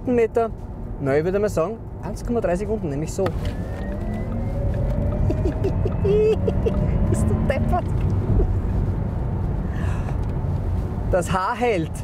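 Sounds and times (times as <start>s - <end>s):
car cabin road and wind rumble: 0.0s - 12.0s
breathy gasp: 9.7s - 10.2s.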